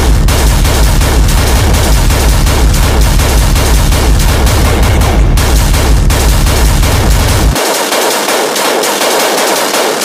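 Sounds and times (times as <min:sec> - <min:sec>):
hard techno music: 0:00.0 - 0:07.7.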